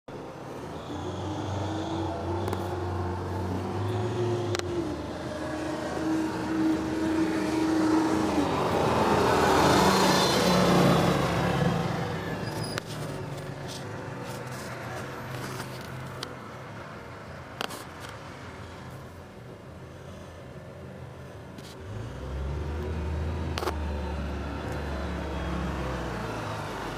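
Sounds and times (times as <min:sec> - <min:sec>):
vehicle engine humming: 0:00.1 - 0:26.9.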